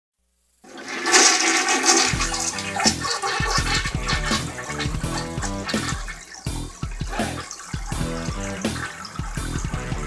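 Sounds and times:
toilet flushing: 0:00.6 - 0:10.0
music with steady bass beat: 0:02.1 - 0:10.0.

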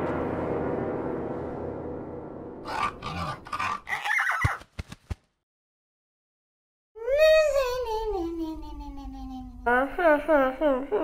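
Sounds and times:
animal-like grunts and snorts: 0:02.6 - 0:04.6.

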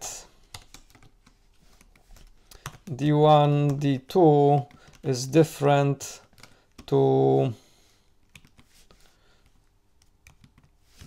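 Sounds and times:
faint computer keyboard keystrokes: 0:00.5 - 0:02.9, 0:04.6 - 0:05.1, 0:06.2 - 0:06.9, 0:08.2 - 0:08.7, 0:09.4 - 0:10.8.

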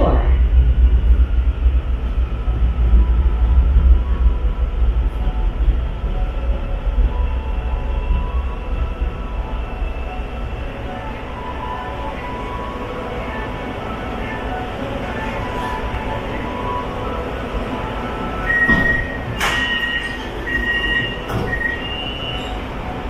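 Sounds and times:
train running rumble: 0:00.0 - 0:23.0.

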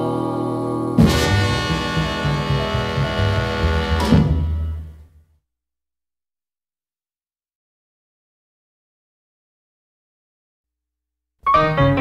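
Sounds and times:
rhythm and blues band closing chord: 0:01.0 - 0:05.0, 0:11.4 - 0:12.0.

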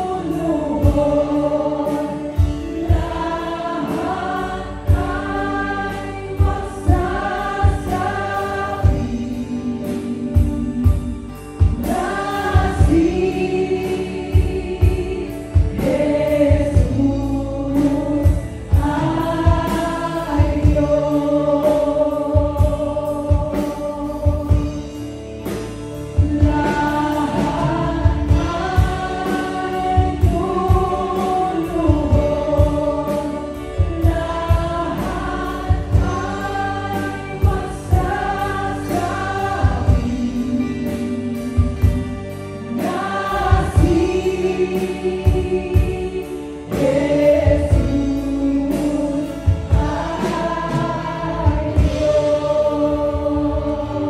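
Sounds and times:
steady drum beat: 0:00.0 - 0:54.0
voices singing together: 0:00.0 - 0:54.0.

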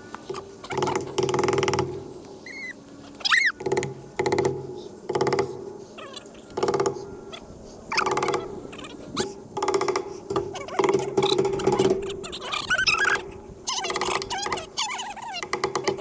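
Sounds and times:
short high squeaks: 0:00.0 - 0:03.7, 0:06.0 - 0:09.4, 0:10.4 - 0:16.0
hammer striking staples: 0:03.6 - 0:05.6.

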